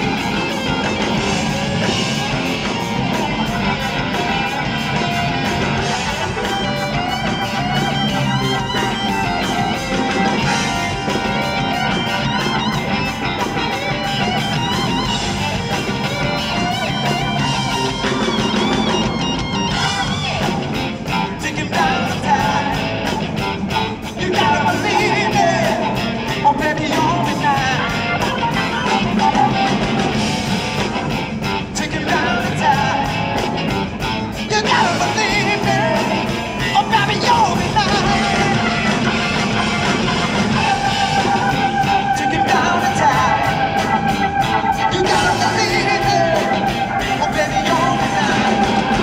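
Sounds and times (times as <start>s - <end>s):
blues rock band playing: 0.0s - 49.0s
lead electric guitar: 0.0s - 49.0s.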